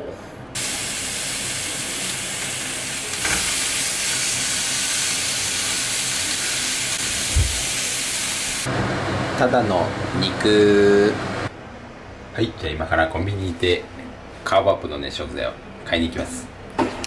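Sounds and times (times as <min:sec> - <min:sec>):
meat sizzling in a frying pan: 0:00.6 - 0:08.7
low thump: 0:07.3 - 0:07.6.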